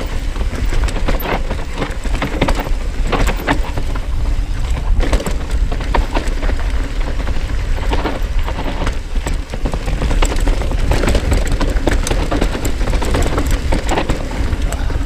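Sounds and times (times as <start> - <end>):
bike rattling and clicking: 0.0 - 15.0
bike tyres rolling over dirt: 0.0 - 15.0
steady low rumble: 0.0 - 15.0.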